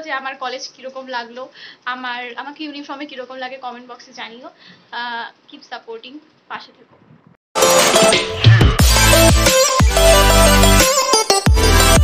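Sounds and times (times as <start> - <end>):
woman speaking: 0.0 - 7.0.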